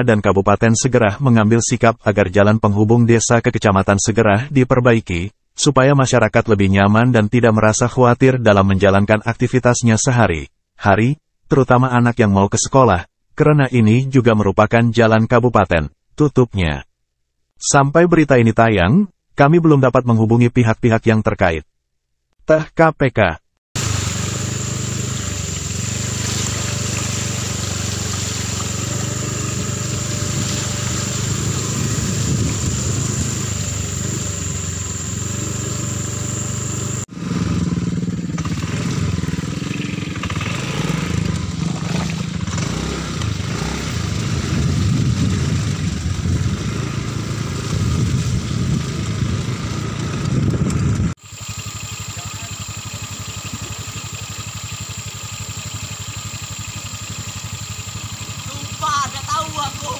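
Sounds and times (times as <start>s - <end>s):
motorcycle engine running: 23.8s - 59.9s.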